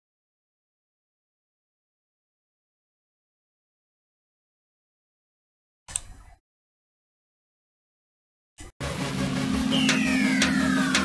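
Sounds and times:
drum and bass beat: 8.8 - 11.0
falling pitch sweep: 8.8 - 11.0
low electronic hum: 8.8 - 11.0.

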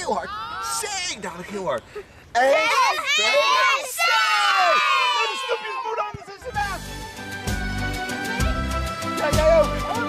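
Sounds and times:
children shouting a cheer: 2.6 - 6.0
upbeat music with steady beat: 6.6 - 10.0.

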